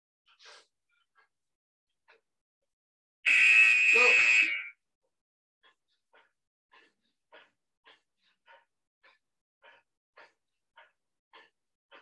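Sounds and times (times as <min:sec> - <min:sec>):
interval timer buzzer: 0:03.3 - 0:04.8.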